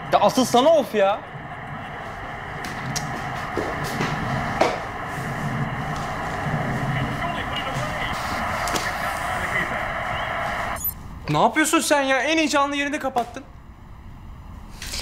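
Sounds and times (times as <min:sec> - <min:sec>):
crowd roar from tv: 0:00.0 - 0:10.9.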